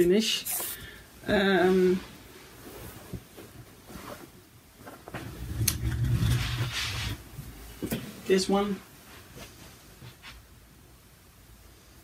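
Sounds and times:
fabric rustling: 0:01.4 - 0:10.5.

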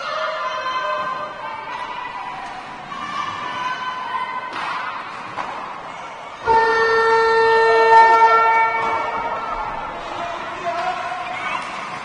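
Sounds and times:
horn blast: 0:06.4 - 0:09.9.

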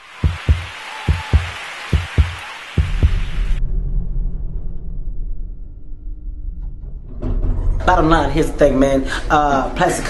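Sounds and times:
loud hiss: 0:00.0 - 0:03.6
heartbeat-like double thumps: 0:00.2 - 0:03.6.

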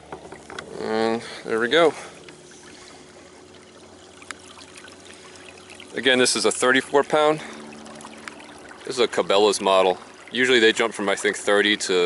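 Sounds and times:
electric trolling motor running: 0:00.0 - 0:12.0
propeller churning water: 0:00.0 - 0:12.0.

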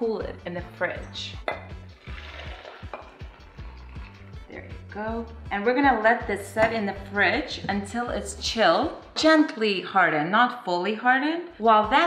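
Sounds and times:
background music with beat: 0:01.4 - 0:09.3
liquid pouring into jug: 0:01.6 - 0:04.5.

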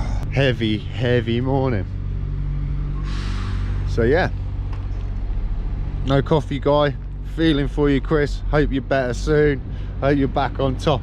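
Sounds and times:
vehicle engine running: 0:00.0 - 0:11.0
short hiss: 0:03.0 - 0:03.9.

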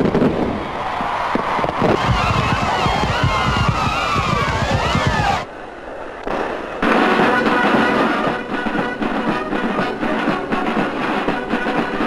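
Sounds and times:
crackling firework bangs: 0:00.0 - 0:05.5, 0:06.2 - 0:11.3
whistling firework rockets: 0:00.0 - 0:05.5
music: 0:06.8 - 0:12.0.

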